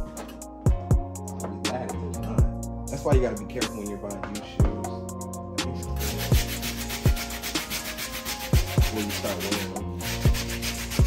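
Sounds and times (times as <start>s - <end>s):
background music: 0.0s - 11.0s
brush scrubbing wet insole: 6.0s - 11.0s.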